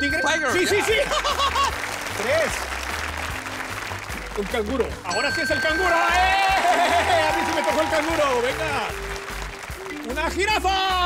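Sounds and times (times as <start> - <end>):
studio audience applauding: 0.5 - 11.0.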